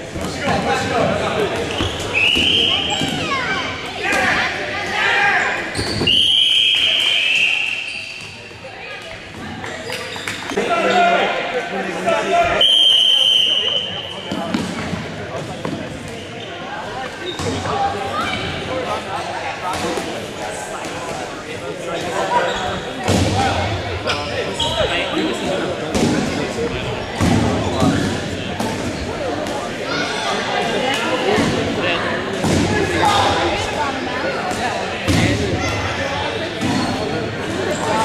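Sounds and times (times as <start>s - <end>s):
players' voices: 0.0s - 38.0s
dodgeballs bouncing on gym floor: 0.1s - 3.5s, 25.8s - 29.6s, 34.4s - 35.9s
referee's whistle blast: 5.8s - 8.3s, 12.6s - 14.3s.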